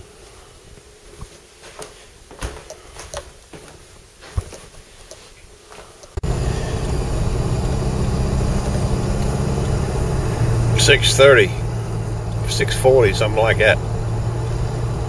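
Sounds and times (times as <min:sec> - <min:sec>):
light clicks and knocks: 0:01.2 - 0:05.3
car engine hum from inside: 0:06.2 - 0:15.0.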